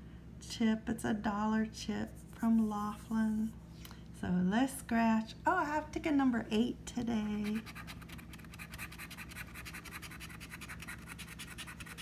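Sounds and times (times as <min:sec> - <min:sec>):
chip scraping scratch-off ticket: 0:07.5 - 0:12.0.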